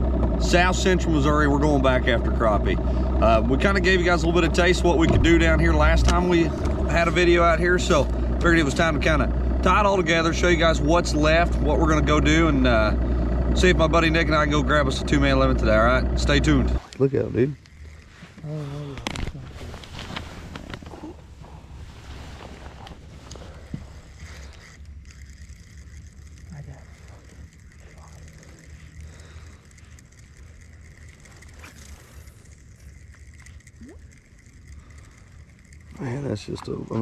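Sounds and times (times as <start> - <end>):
fishing reel clicks: 17.6 - 18.2, 23.6 - 37.0.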